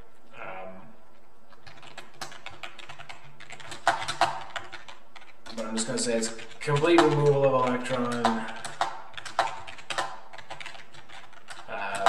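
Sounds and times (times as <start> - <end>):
computer keyboard typing: 1.5 - 12.0.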